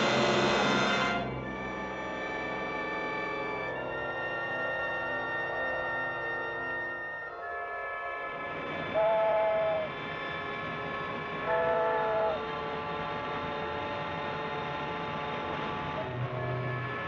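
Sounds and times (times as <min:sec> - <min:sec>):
street noise: 0:00.0 - 0:17.0
two-tone car horn blasts: 0:08.9 - 0:09.9, 0:11.4 - 0:13.4.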